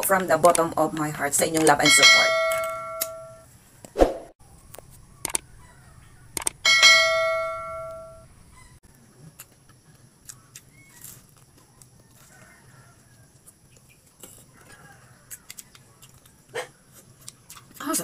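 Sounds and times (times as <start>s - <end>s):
notification ding: 1.9s - 3.4s, 6.7s - 8.2s.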